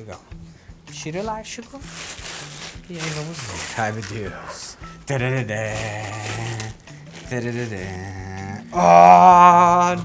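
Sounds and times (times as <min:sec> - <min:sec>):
man making wordless sounds: 0:03.5 - 0:10.0.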